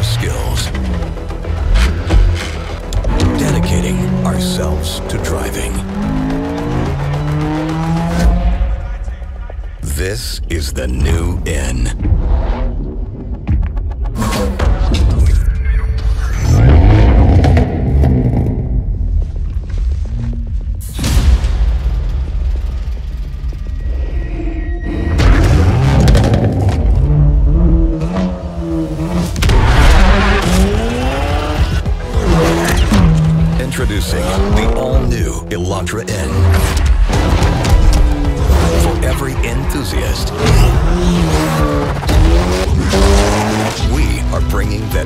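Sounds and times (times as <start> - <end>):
car engine revving hard: 25.4 - 35.0, 36.2 - 45.0.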